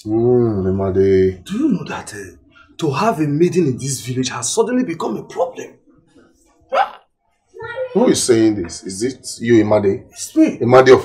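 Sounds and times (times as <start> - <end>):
man speaking: 0.0 - 5.8, 8.0 - 11.0.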